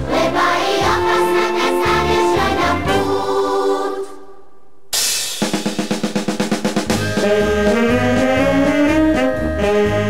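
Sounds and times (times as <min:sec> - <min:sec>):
wind band playing: 0:00.8 - 0:03.3, 0:06.9 - 0:10.0
snare drum roll: 0:05.0 - 0:08.8.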